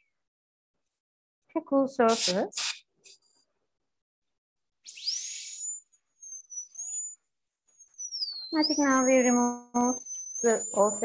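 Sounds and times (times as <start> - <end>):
air and water spray hiss: 2.1 - 2.8
dental drill whine: 4.8 - 11.0.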